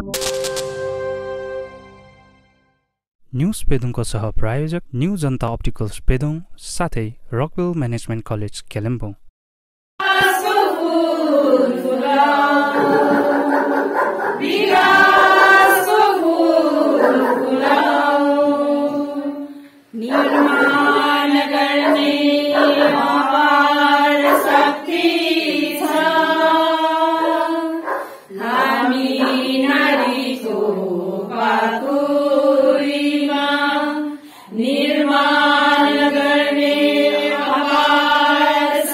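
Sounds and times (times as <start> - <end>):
women singing together: 10.0 - 38.9.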